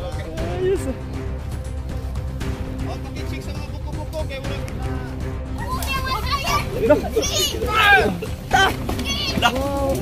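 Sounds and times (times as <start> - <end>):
children calling out: 5.6 - 10.0.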